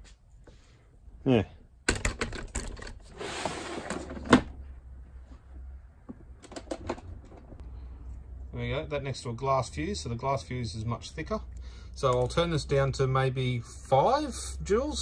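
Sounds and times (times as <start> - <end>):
tools and cables rattling: 1.9 - 3.1, 6.3 - 7.5.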